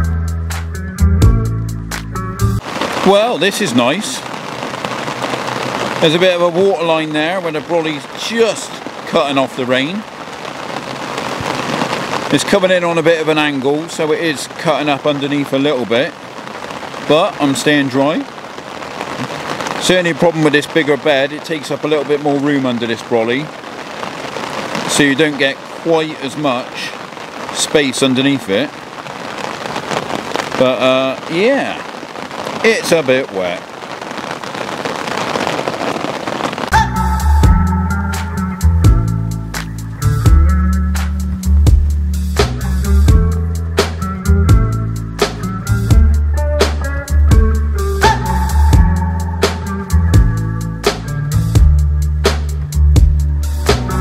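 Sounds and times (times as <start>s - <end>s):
music with deep bass: 0.0s - 2.6s, 36.8s - 54.0s
rain on muddy ground: 1.2s - 54.0s
rain on umbrella: 2.0s - 54.0s.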